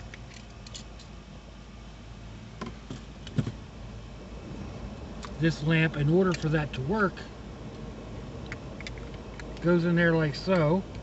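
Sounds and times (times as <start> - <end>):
low hum in vehicle cabin: 0.0 - 11.0.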